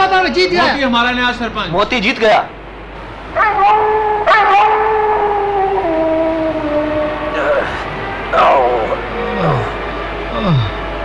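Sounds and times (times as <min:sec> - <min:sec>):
wolves howling: 0:03.3 - 0:09.8.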